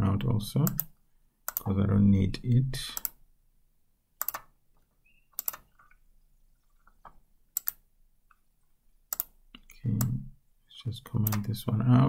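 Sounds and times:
keyboard keystrokes clicking: 0:04.2 - 0:04.5, 0:05.4 - 0:06.0.

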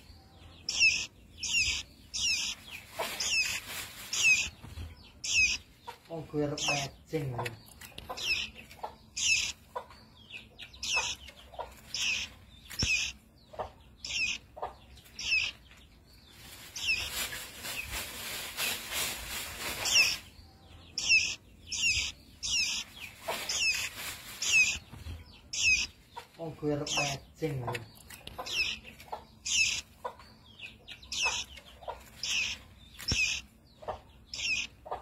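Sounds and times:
songbird chirping: 0:00.0 - 0:35.0.

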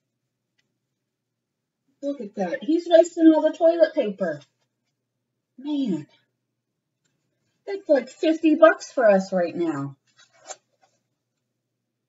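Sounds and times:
book page turning: 0:10.0 - 0:11.0.

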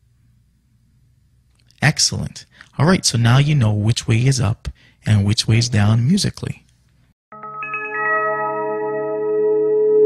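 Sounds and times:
bell-like chime jingle: 0:07.3 - 0:10.0.

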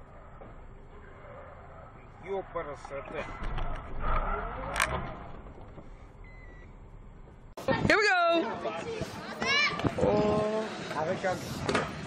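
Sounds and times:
voices: 0:00.4 - 0:05.0.

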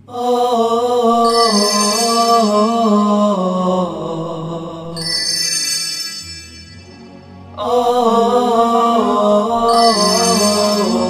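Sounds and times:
wordless chanted vocal: 0:00.0 - 0:05.2, 0:07.4 - 0:11.0
high ringing tones: 0:01.2 - 0:02.8, 0:05.0 - 0:07.4, 0:09.7 - 0:11.0.

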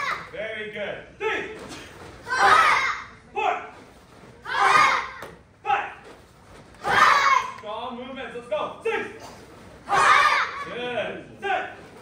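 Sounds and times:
children shouting: 0:00.0 - 0:00.3, 0:02.2 - 0:03.2, 0:04.4 - 0:05.4, 0:06.8 - 0:07.6, 0:09.9 - 0:10.7.

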